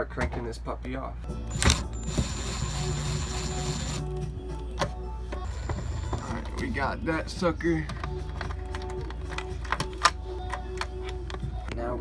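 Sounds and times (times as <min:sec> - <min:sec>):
hands clicking and tapping wiring: 0:07.8 - 0:11.8.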